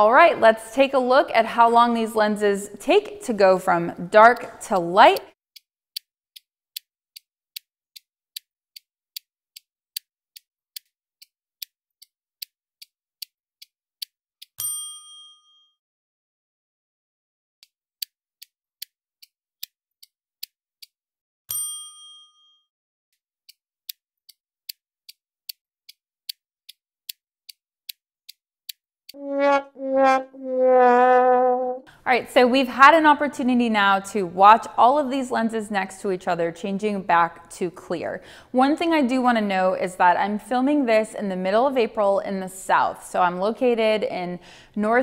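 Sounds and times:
bell-like ding: 14.6 - 15.6, 21.5 - 22.6.

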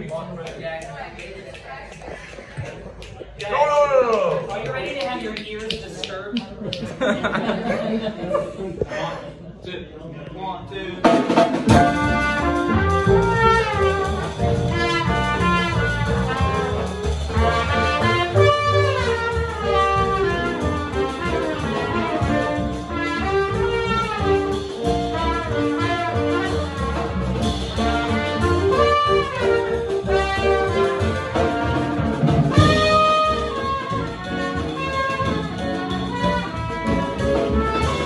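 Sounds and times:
drums: 10.9 - 38.0
piano: 11.3 - 38.0
plucked upright bass: 11.6 - 38.0
trumpet playing quick phrases: 11.7 - 38.0.

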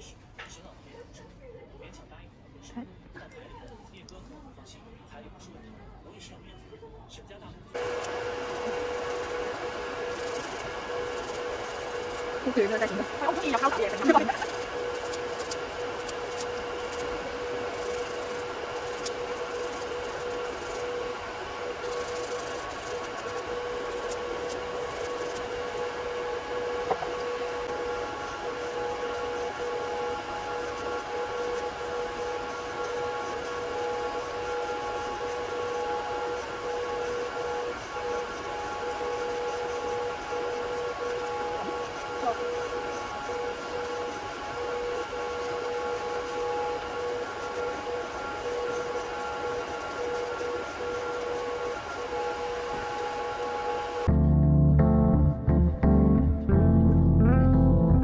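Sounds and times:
dust collector fan humming: 7.7 - 54.6
higher tone: 54.1 - 58.0.

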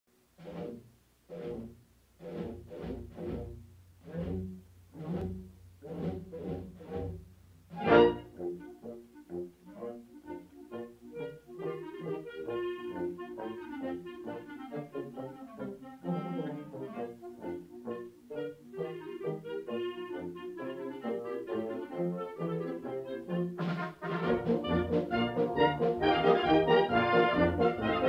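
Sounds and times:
carousel band organ music: 0.4 - 28.0.

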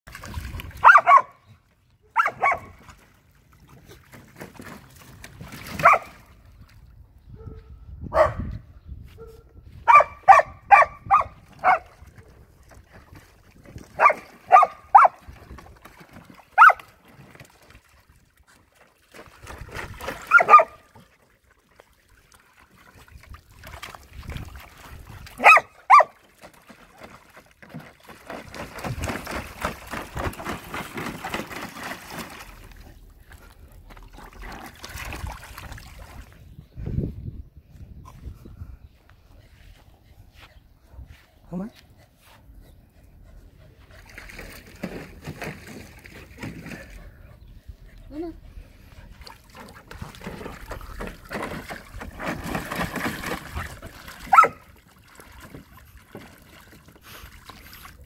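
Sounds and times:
water splashing in paddling pool: 0.0 - 1.5, 2.1 - 6.8, 10.3 - 36.5, 48.2 - 58.0
dog barking: 0.8 - 1.4, 2.1 - 2.7, 5.8 - 6.1, 7.4 - 8.5, 9.2 - 11.9, 14.0 - 15.2, 16.6 - 16.8, 20.3 - 20.8, 25.4 - 26.1, 54.3 - 54.6.

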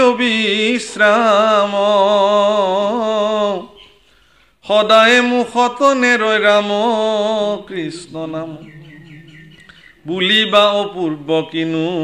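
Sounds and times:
man chanting melodically: 4.6 - 12.0.

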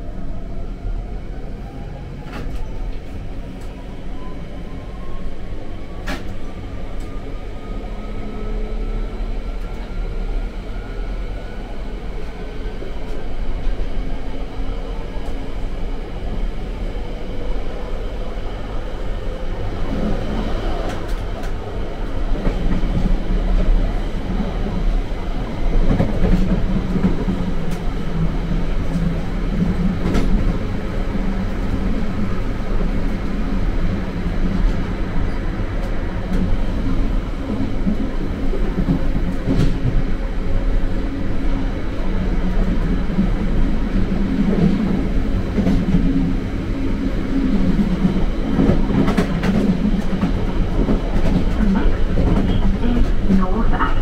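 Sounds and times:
wheels rumbling on track: 5.7 - 54.0.

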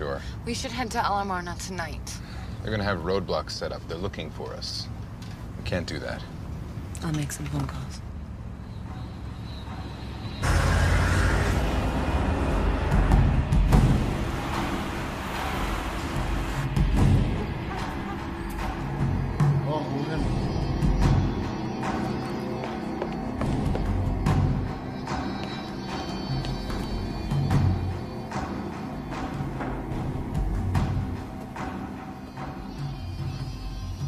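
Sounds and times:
sustained low tones: 8.8 - 21.5.

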